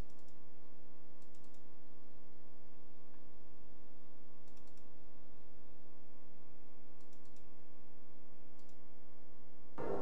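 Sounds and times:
computer mouse clicks: 0.0 - 0.4, 1.2 - 1.7, 4.4 - 4.9, 7.0 - 7.5, 8.6 - 8.8
steady low hum: 0.0 - 10.0.

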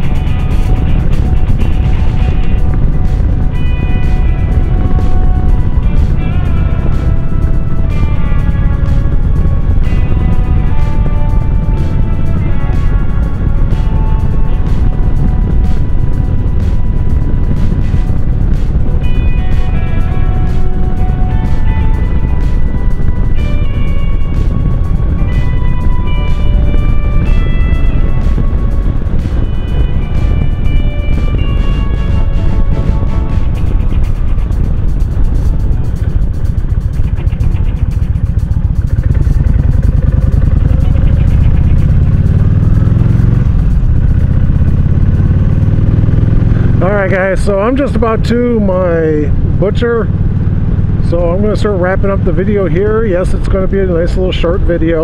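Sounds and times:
background music with melody: 0.0 - 55.0
motorcycle engine rumble: 0.0 - 55.0
wind rush: 0.0 - 55.0.

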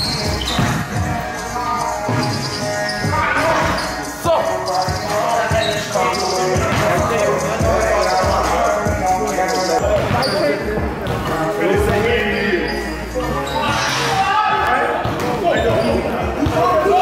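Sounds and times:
basketball bouncing on hall floor: 0.0 - 1.1, 9.8 - 12.1
voices: 0.0 - 17.0.

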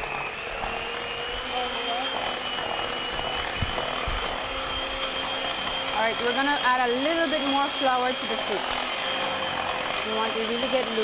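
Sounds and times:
electric hand mixer whirring: 0.0 - 11.0.

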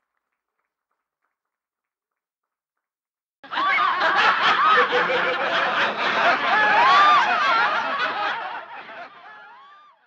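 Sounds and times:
crowd laughing: 3.4 - 10.0.

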